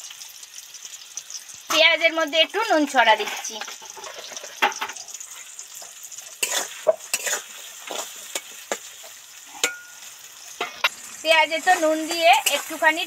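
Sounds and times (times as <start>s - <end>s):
onions sizzling in hot oil: 0.0s - 13.0s
spatula scraping metal pan: 3.1s - 10.9s, 11.5s - 13.0s.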